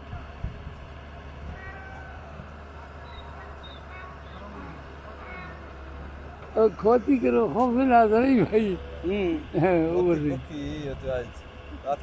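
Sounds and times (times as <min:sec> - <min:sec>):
distant diesel engine running: 0:00.0 - 0:12.0
faint voices calling: 0:00.0 - 0:12.0.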